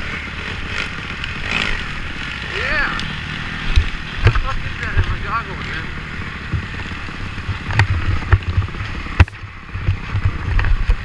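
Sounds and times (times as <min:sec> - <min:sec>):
dirt bike engine revving: 0:00.0 - 0:11.0
wind on microphone: 0:05.9 - 0:11.0.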